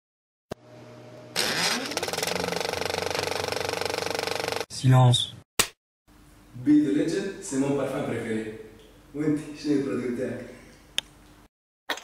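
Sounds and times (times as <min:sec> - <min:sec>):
engine starting and running: 0:01.3 - 0:04.7.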